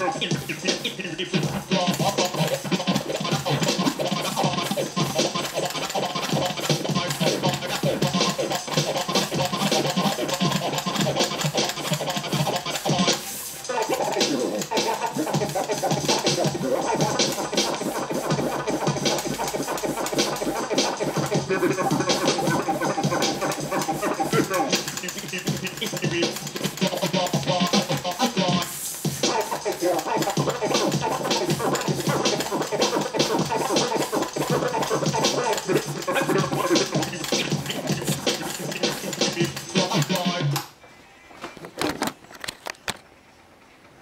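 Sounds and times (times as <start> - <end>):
vinyl record scratching: 0.0 - 40.7, 41.3 - 43.1.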